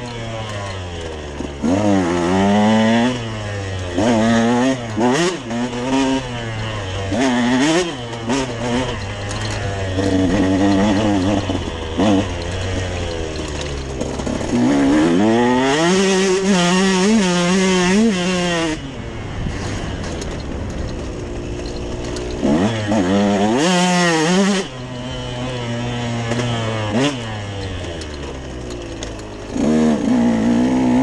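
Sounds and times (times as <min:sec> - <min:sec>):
dirt bike engine revving: 0:00.0 - 0:31.0.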